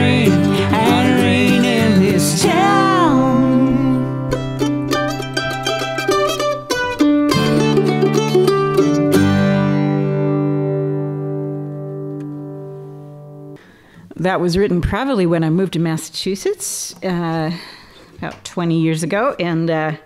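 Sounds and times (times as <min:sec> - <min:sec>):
mandolin: 0:00.0 - 0:13.6
acoustic guitar: 0:00.0 - 0:14.4.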